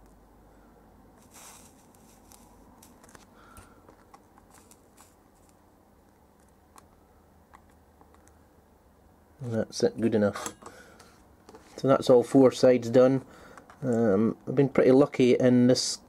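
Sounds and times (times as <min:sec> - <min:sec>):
soft hiss: 0:00.0 - 0:07.3.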